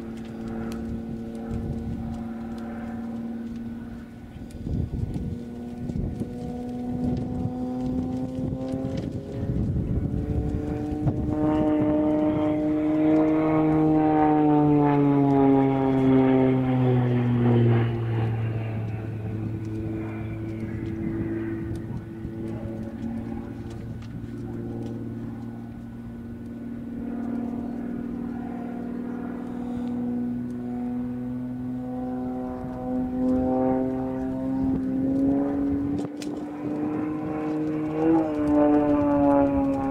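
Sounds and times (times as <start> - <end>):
propeller plane droning: 0.0 - 39.9.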